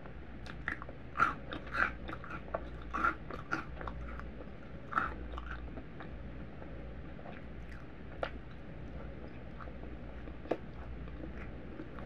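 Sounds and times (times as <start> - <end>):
chewing crunchy cereal: 0.4 - 12.0.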